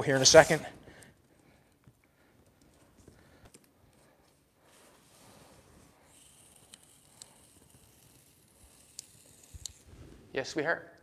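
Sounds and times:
masking tape pulled off roll: 4.9 - 10.3.

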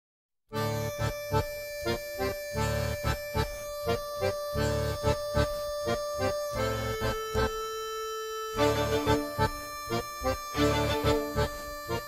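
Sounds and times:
background music with held chords: 0.6 - 12.0
steady beat: 8.6 - 12.0.

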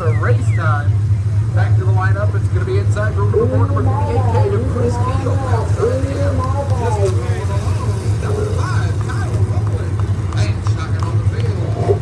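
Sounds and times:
race car engines rumbling: 0.0 - 12.0
announcer over loudspeakers: 3.0 - 7.2.

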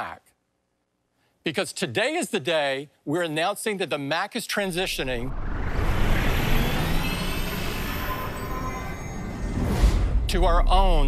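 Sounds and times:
faint rising tones: 4.7 - 10.7
dense rumbling whoosh: 4.8 - 11.0.

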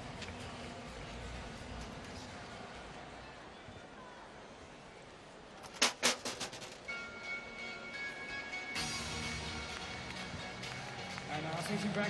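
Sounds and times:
faint stadium ambience: 0.0 - 12.0.

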